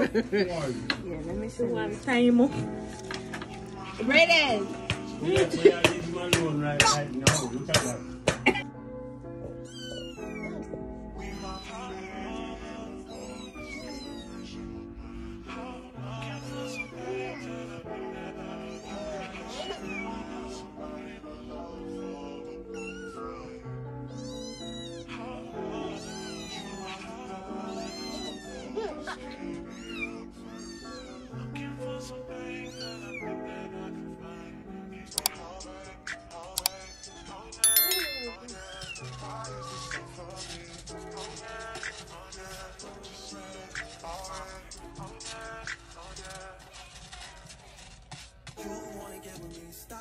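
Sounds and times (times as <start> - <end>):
background music: 0.0 - 9.6
kittens meowing: 9.7 - 10.6
chime sound effect: 37.6 - 38.7.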